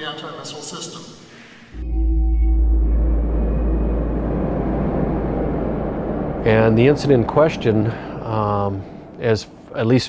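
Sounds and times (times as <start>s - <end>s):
low rumble: 1.8s - 10.0s
noisy hiss: 2.6s - 10.0s.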